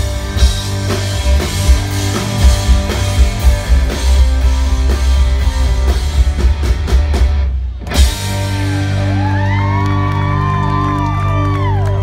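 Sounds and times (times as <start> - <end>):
rock band holding ringing chord: 0.0 - 10.4
crowd whooping and cheering: 7.9 - 12.0.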